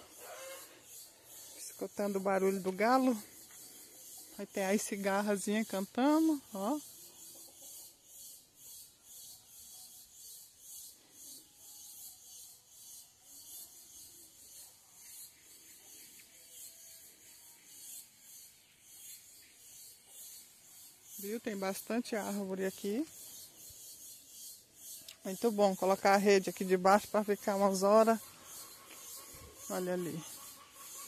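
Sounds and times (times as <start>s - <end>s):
cicadas buzzing: 0.0s - 31.0s.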